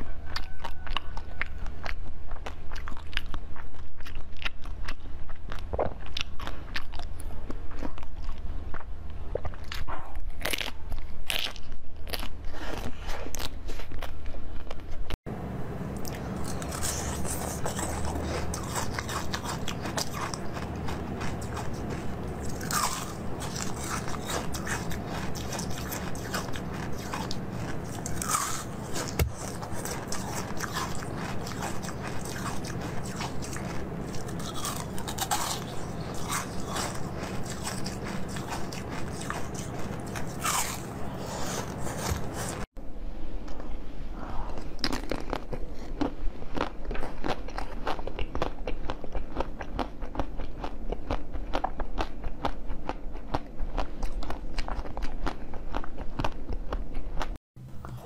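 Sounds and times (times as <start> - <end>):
ice being chewed: 0.0 - 14.8, 16.0 - 42.7, 44.5 - 58.0.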